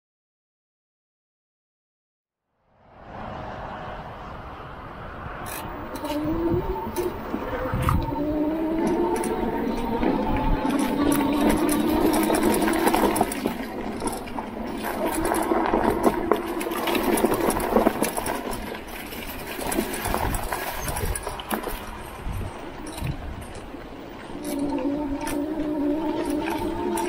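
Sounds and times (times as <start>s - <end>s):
tyres on leafy dirt trail: 2.8s - 27.0s
bike clicking and rattling: 5.4s - 27.0s
electric bike motor whining: 5.4s - 27.0s.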